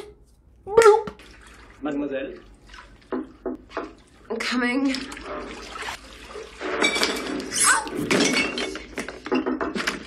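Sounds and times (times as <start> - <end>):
objects clattering over: 6.6 - 10.0.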